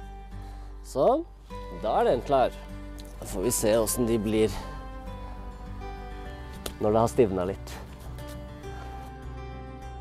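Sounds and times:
instrumental background music: 0.0s - 10.0s.

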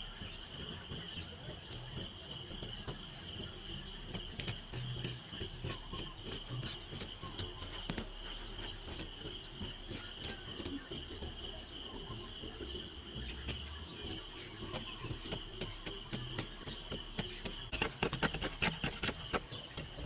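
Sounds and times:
hand hoe scraping dry soil: 0.0s - 20.0s
insects chirring: 0.0s - 20.0s.

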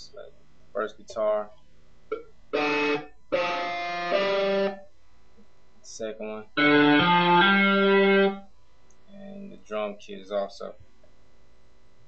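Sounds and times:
sampled guitar chords: 2.1s - 4.9s, 6.6s - 8.5s.

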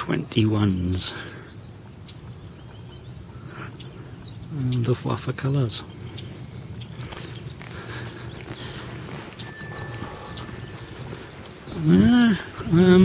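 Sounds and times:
bird chirping: 0.0s - 13.0s
outdoor background noise: 0.0s - 13.0s.

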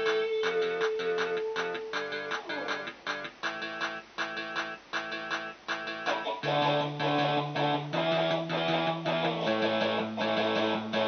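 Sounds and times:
electric guitar strumming chords: 0.0s - 11.0s.

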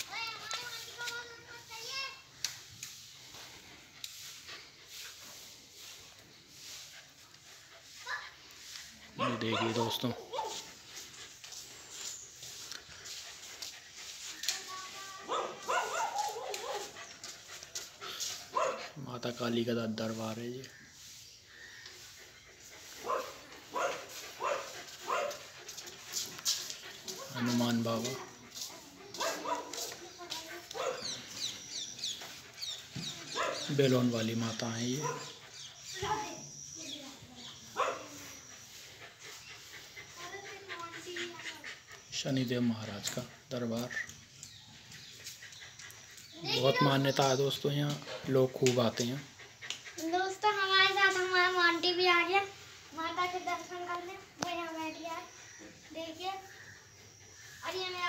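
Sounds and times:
dog barking: 9.2s - 10.7s, 15.2s - 17.0s, 18.4s - 19.0s, 22.8s - 25.5s, 29.1s - 30.0s, 30.6s - 31.4s, 33.2s - 34.0s, 34.8s - 35.4s, 37.6s - 38.8s.

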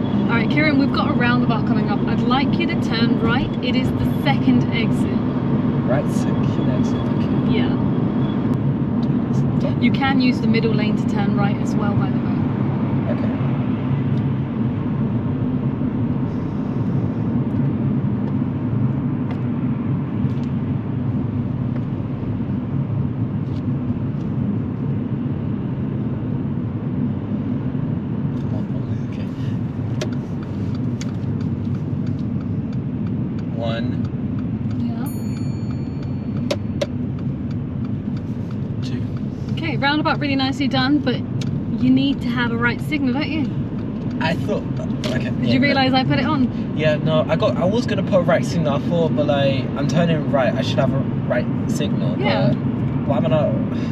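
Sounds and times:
car engine and tyres rumbling: 0.0s - 53.9s.

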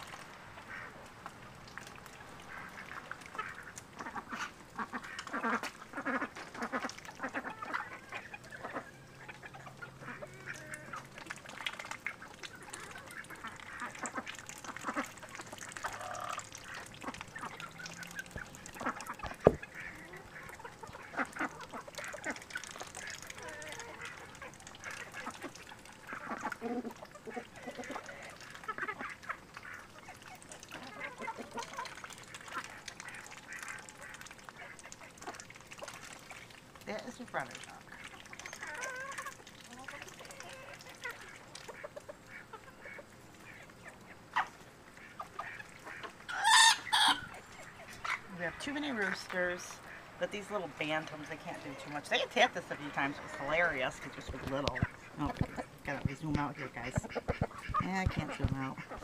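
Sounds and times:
ducks dabbling in muddy water: 0.0s - 59.0s
ducks quacking: 0.6s - 1.0s, 2.4s - 36.1s, 36.9s - 59.0s.

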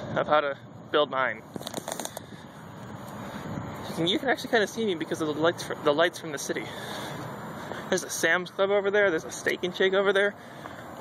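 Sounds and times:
rushing outdoor background noise: 0.0s - 11.0s.

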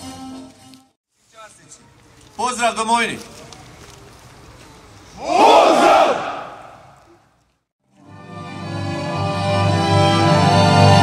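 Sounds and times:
soldiers shouting in unison: 5.2s - 6.8s.

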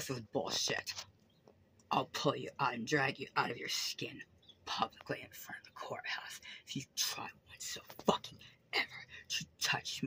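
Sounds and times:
woman whispering: 4.7s - 10.0s.

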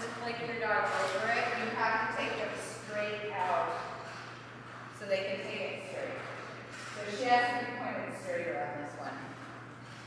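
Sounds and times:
woman talking: 0.0s - 4.0s, 5.0s - 6.4s, 7.0s - 9.3s
steady low hum: 0.0s - 10.0s.

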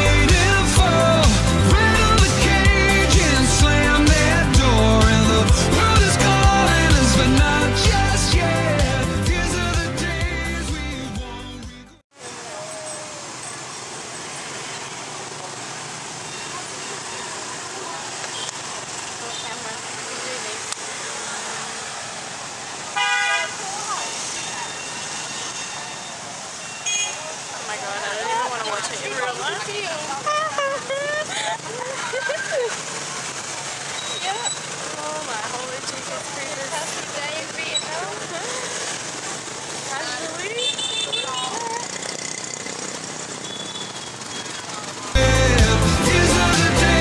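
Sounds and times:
background voices: 0.0s - 14.0s, 27.4s - 42.2s, 44.8s - 47.0s
motor scooters passing: 12.2s - 26.6s, 27.2s - 45.2s
vehicle horn beeping: 23.0s - 27.2s, 40.4s - 41.6s, 43.4s - 44.7s
voices calling: 23.3s - 47.0s.

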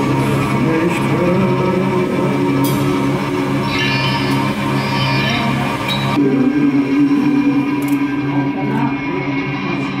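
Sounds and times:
electric guitar with echo: 0.0s - 10.0s.

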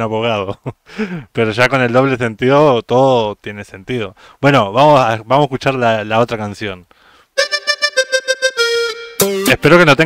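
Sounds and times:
toy keyboard repeating reedy note: 7.4s - 9.6s.

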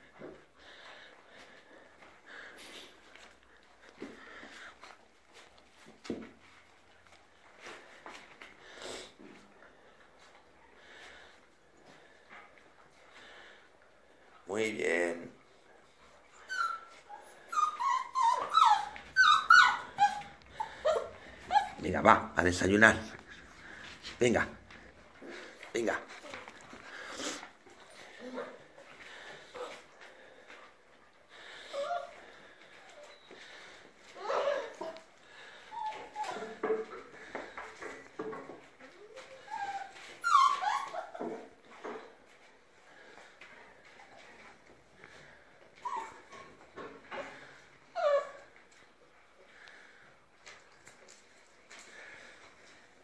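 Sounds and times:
puppy whining: 15.9s - 22.0s, 26.2s - 30.0s, 31.6s - 37.3s, 38.7s - 42.1s, 44.0s - 48.8s.

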